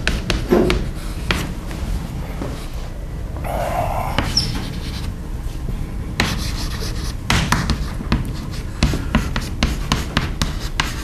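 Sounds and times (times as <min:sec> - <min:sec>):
low room hum: 0:00.0 - 0:11.0
chalk scraping on chalkboard: 0:06.2 - 0:11.0.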